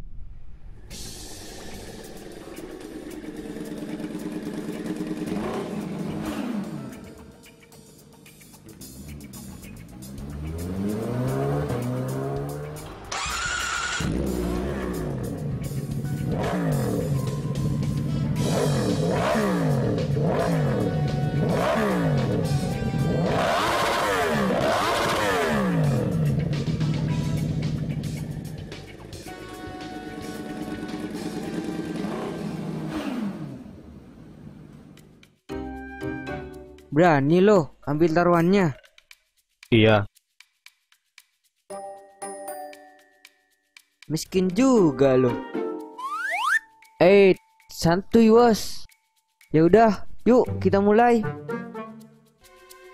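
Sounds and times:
background music: 0.8s - 32.9s, 35.0s - 52.9s
motorcycle engines revving: 1.7s - 7.3s, 8.7s - 34.6s.

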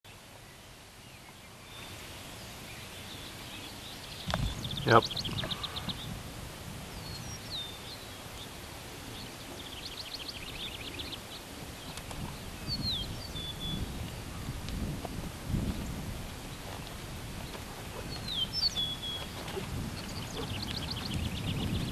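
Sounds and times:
outdoor background hiss: 0.1s - 21.9s
small birds singing: 0.1s - 21.9s.

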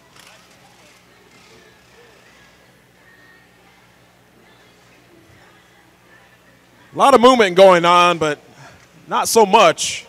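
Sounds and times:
distant crowd voices: 0.0s - 10.0s
steady low hum: 0.0s - 10.0s.

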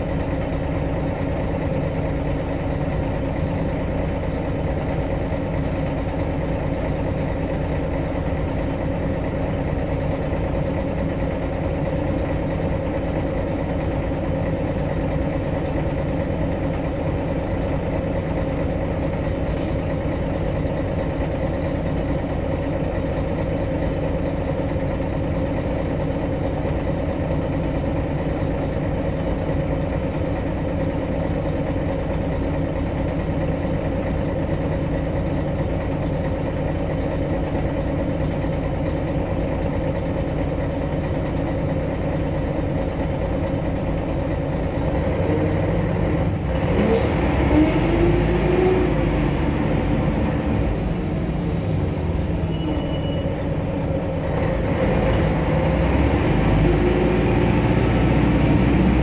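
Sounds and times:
bus engine humming: 0.0s - 59.0s.

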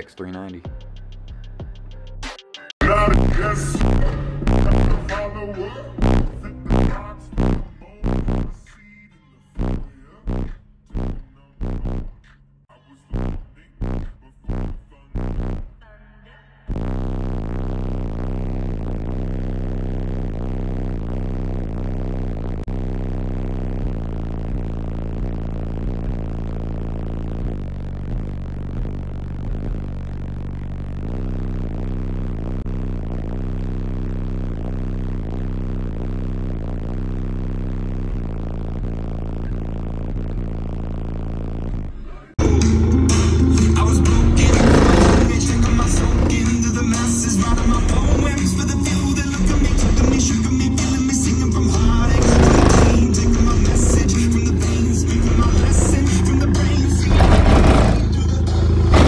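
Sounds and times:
bass-heavy electronic music: 0.0s - 59.0s.

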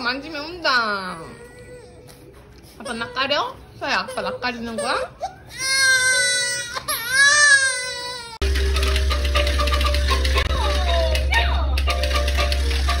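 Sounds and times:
baby crying: 4.0s - 8.4s.

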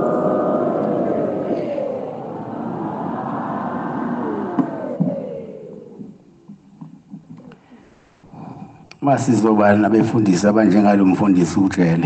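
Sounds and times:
choir singing long notes: 0.0s - 6.6s.

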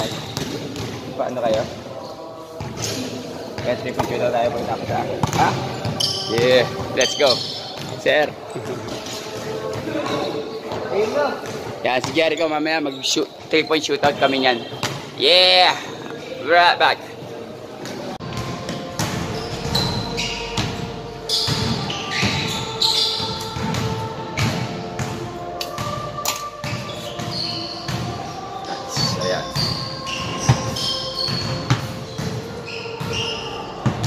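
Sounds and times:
basketballs bouncing on hard court: 0.0s - 1.7s, 3.6s - 6.9s, 14.0s - 15.1s, 18.3s - 22.6s, 23.2s - 25.2s, 29.0s - 33.2s
indistinct voices: 0.0s - 34.0s.

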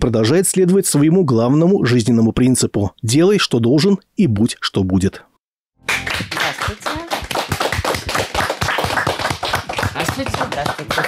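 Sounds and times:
small group clapping: 5.8s - 11.0s.

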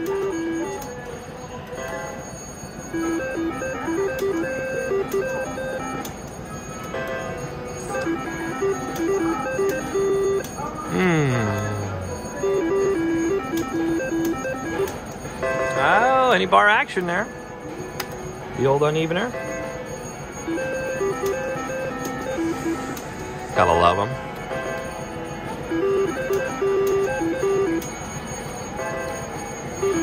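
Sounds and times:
slot machine chimes and beeps: 0.0s - 30.0s.

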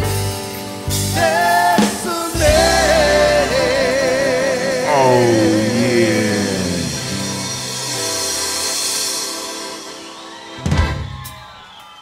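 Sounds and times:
singer holding note with vibrato: 4.8s - 7.8s
low held bass note: 4.9s - 7.7s.

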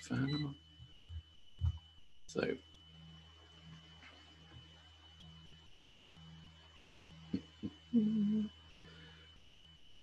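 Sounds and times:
fan high whine: 0.0s - 10.0s.

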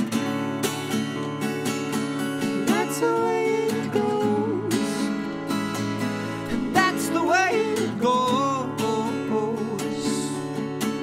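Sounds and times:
acoustic guitar strumming: 0.0s - 11.0s
person singing: 2.5s - 5.5s, 6.2s - 10.6s.

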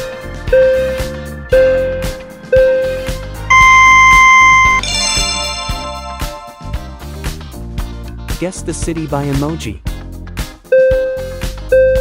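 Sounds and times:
background music: 0.0s - 12.0s
countdown timer beeping: 0.5s - 7.0s, 10.8s - 12.0s.

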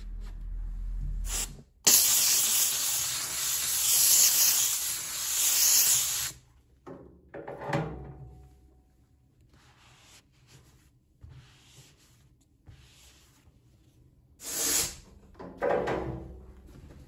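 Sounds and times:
steam cleaner jet hissing: 1.3s - 6.4s, 14.4s - 15.0s.

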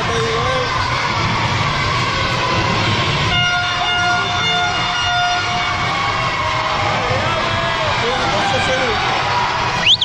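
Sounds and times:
crowd cheering: 0.0s - 10.0s
horn toots: 2.5s - 5.9s.

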